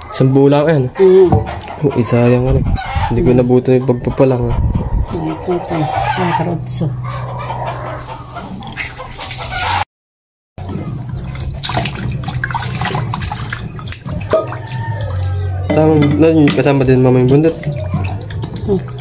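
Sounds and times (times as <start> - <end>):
water sloshing and splashing: 8.4 - 9.8, 10.6 - 19.0.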